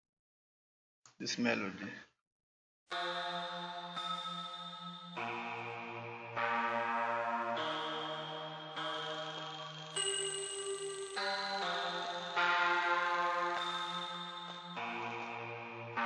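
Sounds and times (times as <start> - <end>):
slow synth melody: 2.9 - 16.0.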